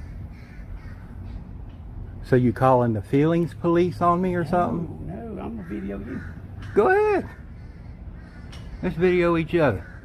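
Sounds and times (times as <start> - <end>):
faint bird calls: 0.0 - 2.2, 4.5 - 10.0.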